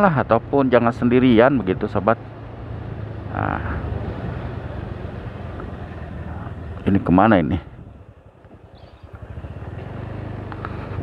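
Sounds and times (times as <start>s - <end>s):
motorcycle engine accelerating: 1.2s - 11.0s.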